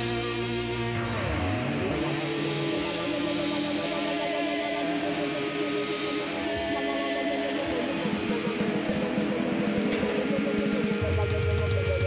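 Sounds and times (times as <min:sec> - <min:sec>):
bass guitar: 0:00.0 - 0:12.0
drums steady beat: 0:00.0 - 0:12.0
electric guitar riff: 0:00.0 - 0:12.0.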